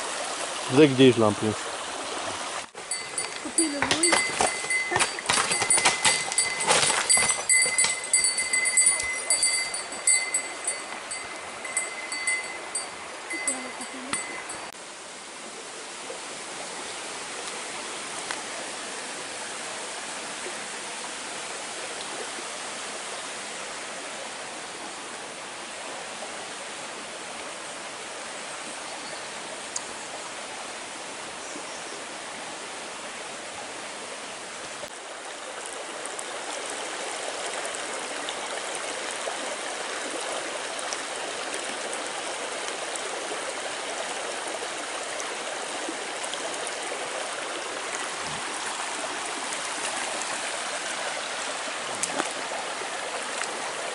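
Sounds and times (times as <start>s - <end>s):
stream splashing over stones: 0.0s - 31.7s, 32.3s - 53.9s.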